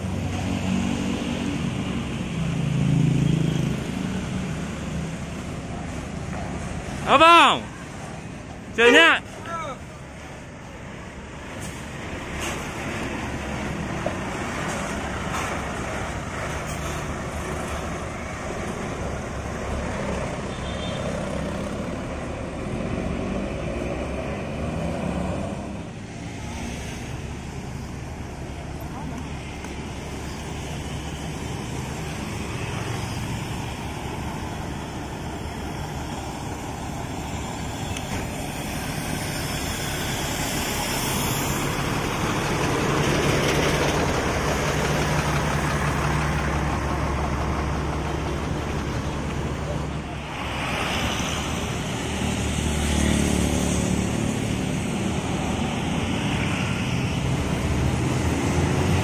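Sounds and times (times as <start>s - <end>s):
diesel bus engines idling: 3.6s - 24.6s, 27.1s - 59.0s.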